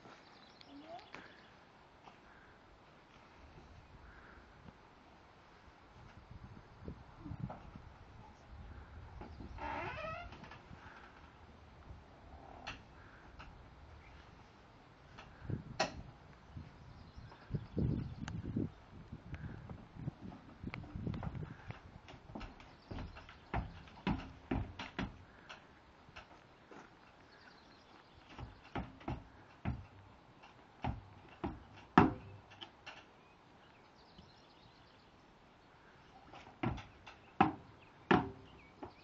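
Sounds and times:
hooves on trailer floor: 9.2s - 11.4s, 19.4s - 32.6s, 36.1s - 39.0s.

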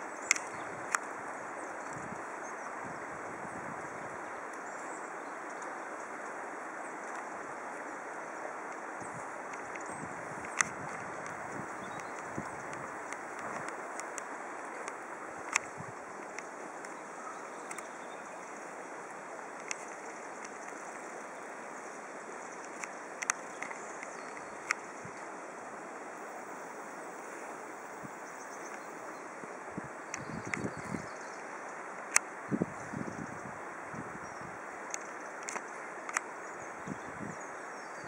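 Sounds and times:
stream water rushing: 0.0s - 37.8s
outdoor hiss: 0.0s - 38.0s
faint sharp clicks: 0.2s - 1.2s, 5.5s - 5.8s, 6.9s - 7.4s, 8.7s - 17.0s, 17.6s - 18.0s, 19.5s - 21.1s, 22.4s - 25.3s, 30.1s - 31.0s, 32.0s - 32.3s, 34.8s - 36.4s.

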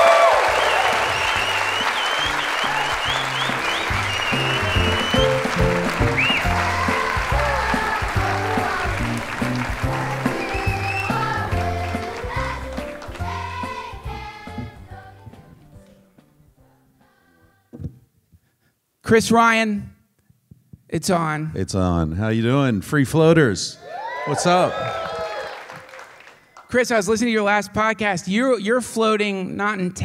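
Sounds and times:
audience applauding: 0.0s - 14.0s, 23.9s - 26.7s
walk-on music with bass line: 1.2s - 16.4s.

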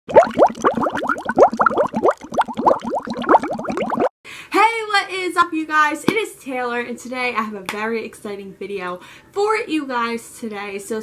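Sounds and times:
bubbly bloop plops: 0.1s - 4.1s.

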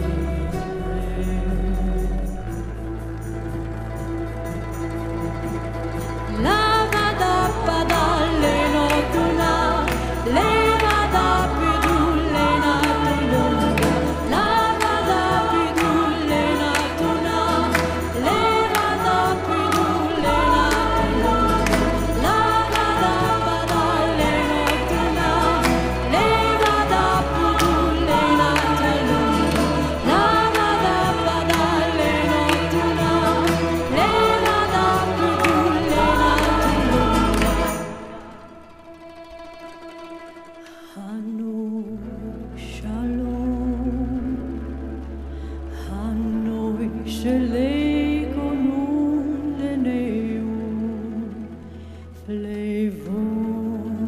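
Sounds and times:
mandolin and guitar orchestra: 0.0s - 54.0s
mixed choir singing: 6.3s - 39.0s.

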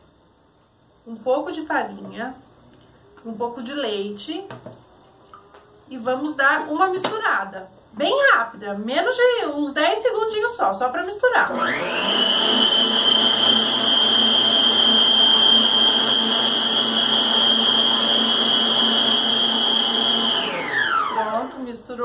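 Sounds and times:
electric stand mixer whining: 11.5s - 21.6s.

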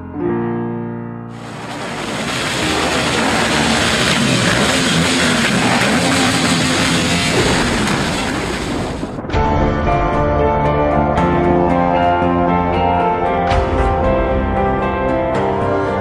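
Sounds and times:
motorcycle engines revving: 1.4s - 9.2s.

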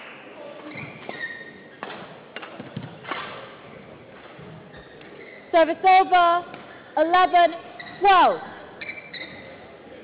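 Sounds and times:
court shoes squeaking: 0.6s - 5.7s, 7.5s - 9.8s
rackets hitting shuttlecock: 1.8s - 3.5s.

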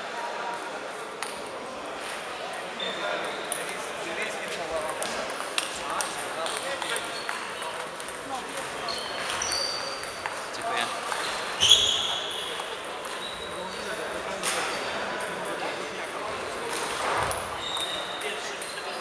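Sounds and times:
table tennis ball clicking: 4.8s - 11.2s.

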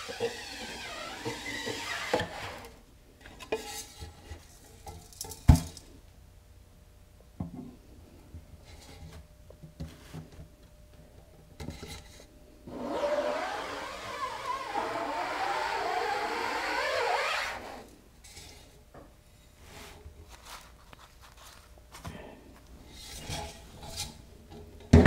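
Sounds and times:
scoop coater scraping up screen mesh: 12.7s - 17.9s.

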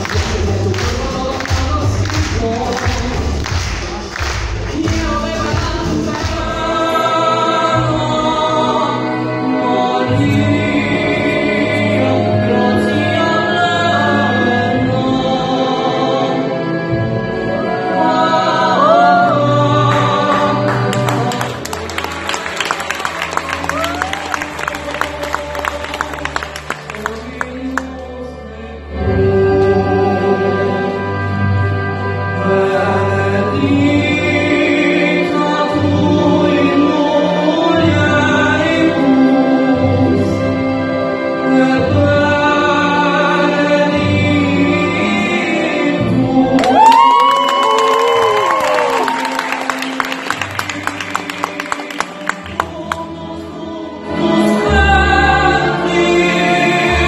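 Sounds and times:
man singing classical-style song: 0.0s - 17.0s, 17.6s - 57.0s
musical accompaniment: 0.0s - 57.0s.

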